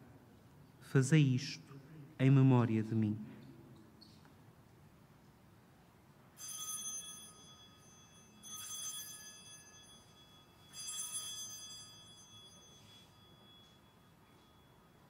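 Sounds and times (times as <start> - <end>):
altar bells ringing: 6.4 - 15.0.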